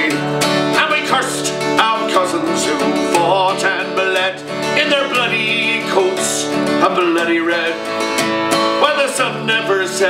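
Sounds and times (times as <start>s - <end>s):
acoustic guitar strumming: 0.0s - 10.0s
man singing: 0.0s - 10.0s.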